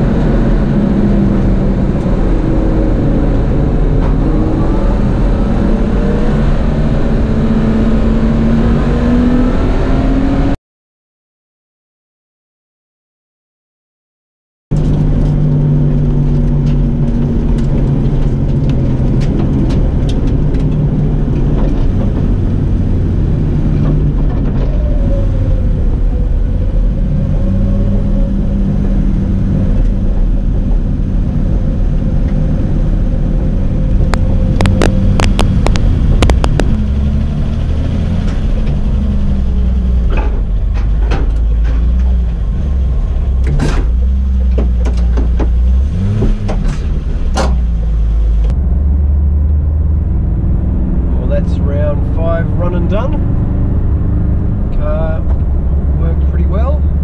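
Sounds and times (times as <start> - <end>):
engine and road noise: 0.0 - 10.6, 14.7 - 57.0
car engine running: 14.7 - 57.0
sharp clicks and knocks: 33.9 - 36.9, 40.0 - 42.7, 43.4 - 48.6
man's voice: 51.1 - 53.2, 56.0 - 56.9.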